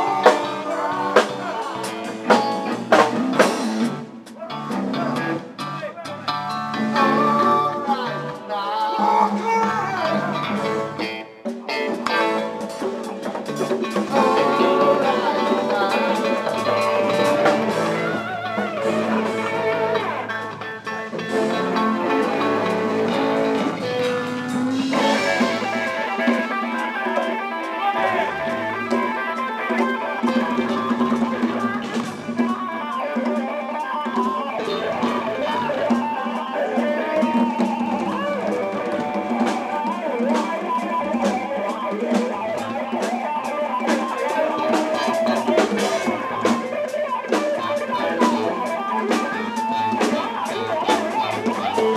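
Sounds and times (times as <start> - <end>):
congas: 0.0 - 51.9
live band with electric guitar: 0.0 - 51.9.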